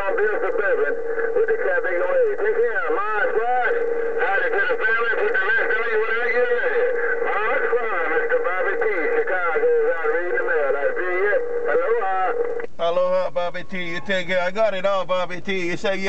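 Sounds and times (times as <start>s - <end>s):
voice over radio speaker: 0.0s - 16.0s.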